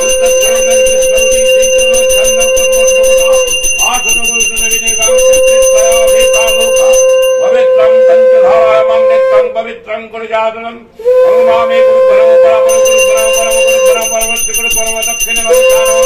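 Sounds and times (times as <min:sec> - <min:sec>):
hand bell rung rapidly: 0:00.0 - 0:07.6, 0:12.7 - 0:16.0
conch shell blown: 0:00.0 - 0:09.5, 0:11.0 - 0:14.6, 0:15.2 - 0:16.0.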